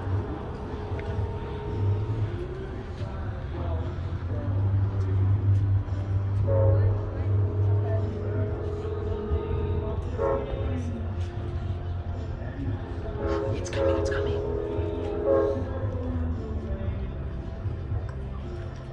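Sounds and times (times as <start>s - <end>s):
distant train rumble: 0.0s - 18.9s
faint steady tones: 0.0s - 18.9s
people talking: 0.0s - 18.9s.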